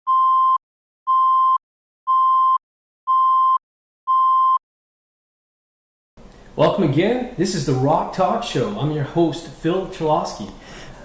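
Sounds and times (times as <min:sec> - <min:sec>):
electronic countdown beeps: 0:00.1 - 0:04.6.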